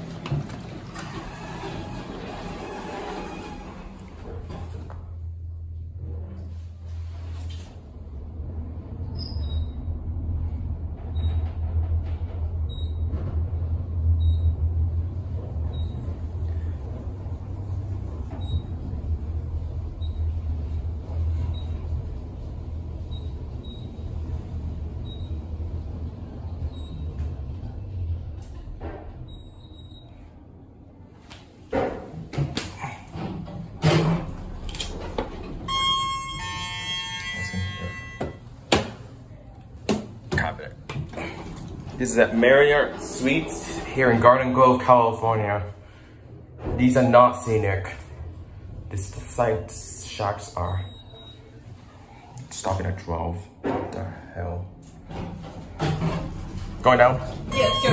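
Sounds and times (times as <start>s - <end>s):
elevator rumble and hum: 0.0s - 57.9s
elevator two-tone chime: 35.6s - 38.5s, 57.5s - 57.9s
short high beeps: 35.7s - 38.4s, 57.5s - 57.9s.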